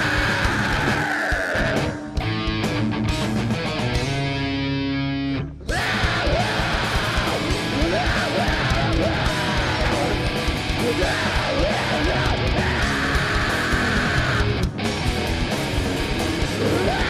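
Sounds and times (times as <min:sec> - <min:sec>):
heavy metal band playing live: 0:00.0 - 0:17.0.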